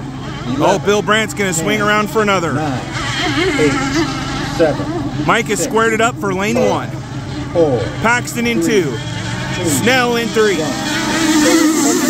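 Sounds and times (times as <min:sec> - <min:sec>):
model boat engines on water: 0:00.0 - 0:12.0.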